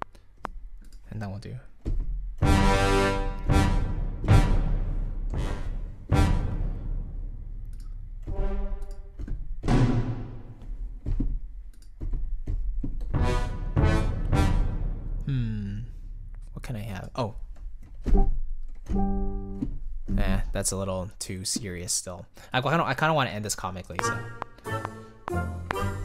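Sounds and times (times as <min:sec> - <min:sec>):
orchestral hits with timpani and brass: 0:02.4 - 0:07.6, 0:08.3 - 0:08.8, 0:09.6 - 0:10.6, 0:13.2 - 0:15.3.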